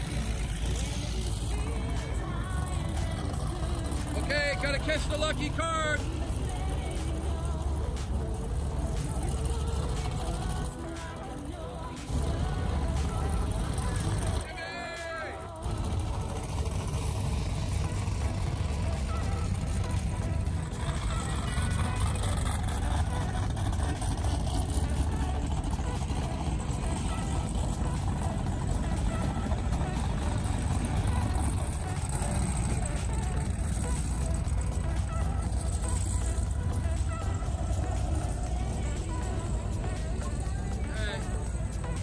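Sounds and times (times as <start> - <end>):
boat engines idling: 0.0 - 42.0.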